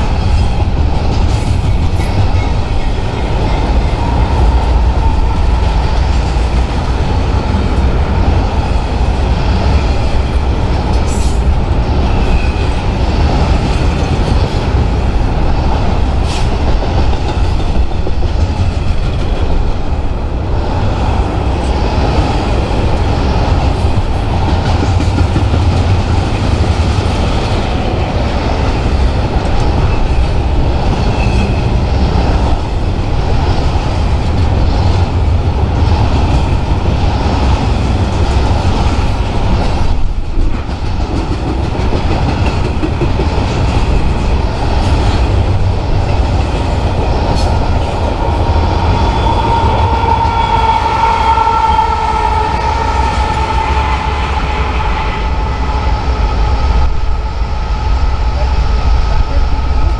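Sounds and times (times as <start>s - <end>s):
freight train wheels rumbling: 0.0s - 59.9s.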